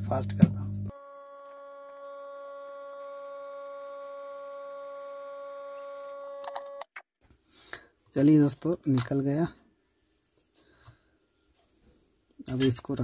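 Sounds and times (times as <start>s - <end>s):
hot air gun humming with whine: 0.9s - 6.8s.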